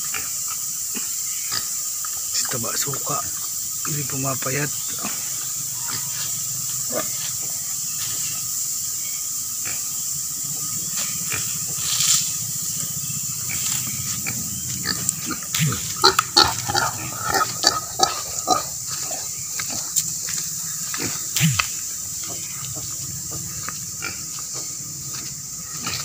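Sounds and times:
background hiss: 0.0s - 26.0s
pig grunting: 4.8s - 7.6s, 13.3s - 20.0s
rustling in dry leaves: 4.8s - 9.3s, 10.2s - 26.0s
crackles and crunches of leaves: 10.6s - 21.8s.

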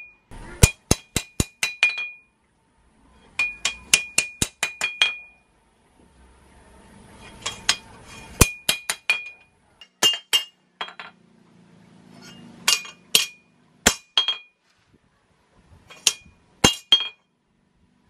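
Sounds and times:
hammer striking blade on anvil: 0.0s - 2.3s, 3.4s - 5.4s, 7.3s - 11.1s, 12.2s - 14.5s, 15.9s - 17.2s.

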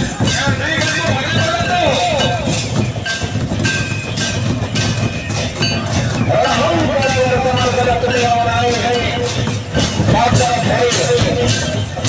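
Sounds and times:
rhythmic folk drumming: 0.0s - 12.0s.

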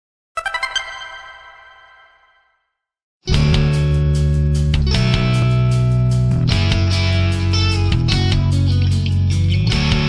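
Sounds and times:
chiming logo jingle: 0.4s - 2.5s.

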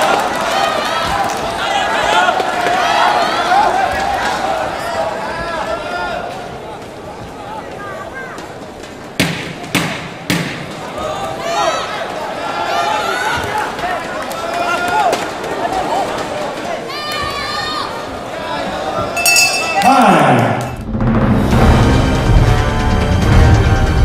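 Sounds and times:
crowd background: 0.0s - 24.0s.

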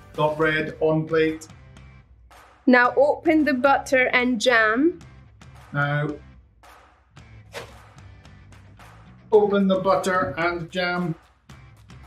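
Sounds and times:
quiet background music: 0.0s - 6.4s, 9.2s - 12.0s.

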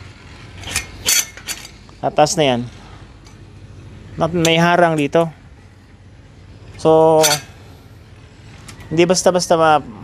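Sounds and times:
metal stop piece clinking: 0.6s - 1.9s, 6.7s - 7.6s.

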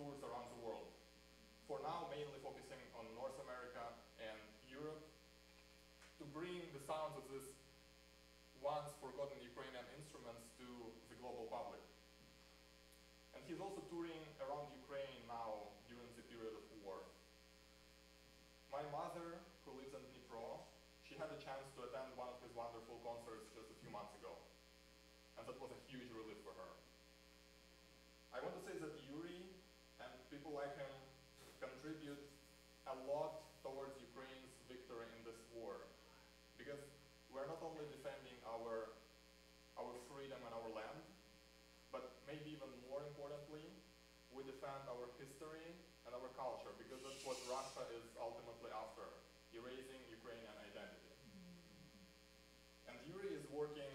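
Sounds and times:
man speaking: 0.0s - 1.0s, 1.7s - 5.2s, 6.2s - 7.6s, 8.6s - 11.9s, 13.4s - 17.2s, 18.7s - 24.5s, 25.4s - 26.8s, 28.3s - 32.3s, 32.9s - 36.0s, 36.6s - 39.0s, 39.8s - 41.1s, 41.9s - 51.2s, 52.9s - 53.9s
electrical mains hum: 0.0s - 53.9s
faint man speaking: 44.9s - 52.0s.

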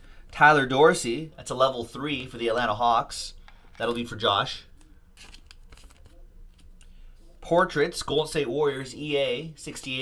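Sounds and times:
trading cards clicking and rustling: 4.7s - 6.8s.

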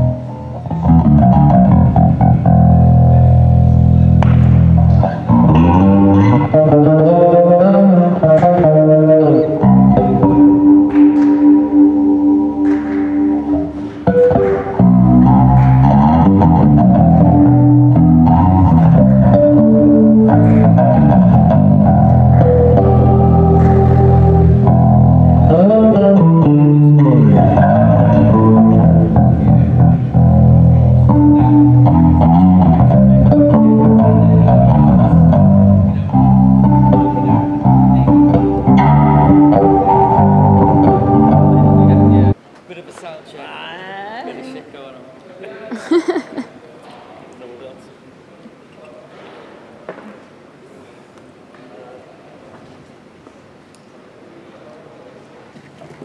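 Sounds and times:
rock music with bass guitar: 0.0s - 42.4s.

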